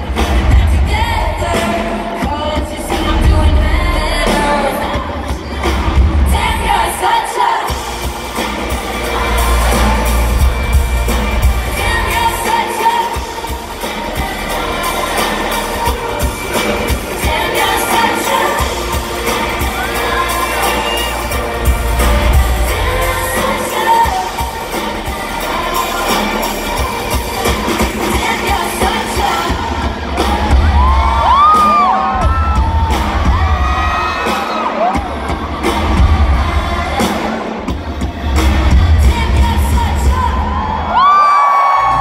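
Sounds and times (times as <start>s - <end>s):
crowd noise: 0.0s - 42.0s
live pop band with woman singing: 0.0s - 42.0s
heavy bass beat: 7.7s - 40.5s.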